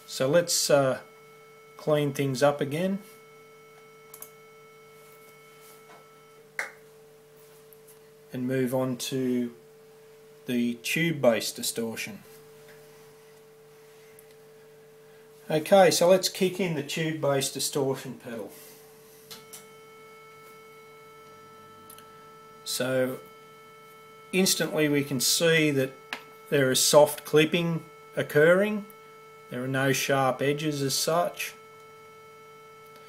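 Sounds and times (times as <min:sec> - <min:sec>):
distorted buzzy test tone: 0:00.0 - 0:07.4, 0:15.3 - 0:33.0
clean sine tone: 0:00.0 - 0:33.0.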